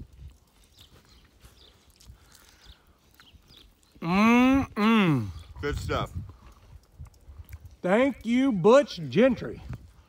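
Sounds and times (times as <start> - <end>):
light rustling on snow: 0.0 - 3.9.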